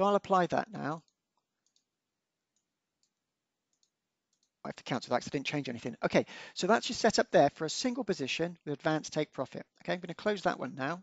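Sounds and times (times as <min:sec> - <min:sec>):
computer mouse clicks: 0:01.0 - 0:01.9, 0:02.5 - 0:04.6.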